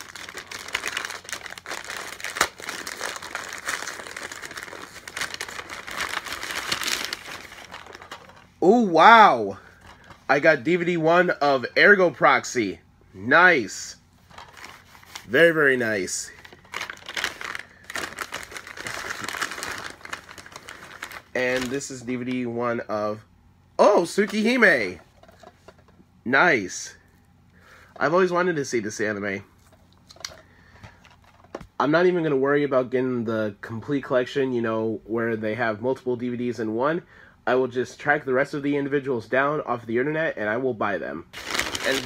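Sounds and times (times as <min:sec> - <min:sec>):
paper bag crinkling: 0:00.0 - 0:08.6, 0:14.2 - 0:22.4, 0:41.3 - 0:42.0.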